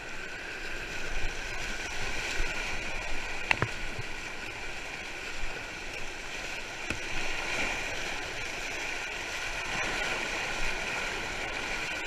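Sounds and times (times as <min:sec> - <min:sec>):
whitewater churning and splashing: 0:00.0 - 0:12.0.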